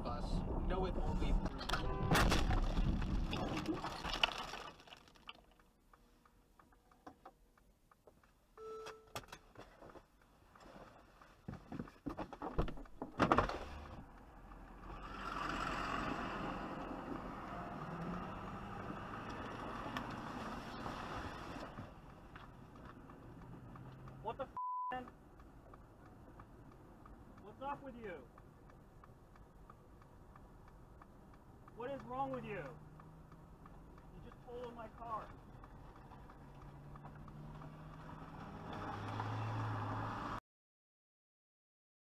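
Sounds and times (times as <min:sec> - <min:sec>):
traffic noise: 0:00.0 - 0:03.5, 0:05.5 - 0:40.4
short high beep: 0:08.6 - 0:09.2.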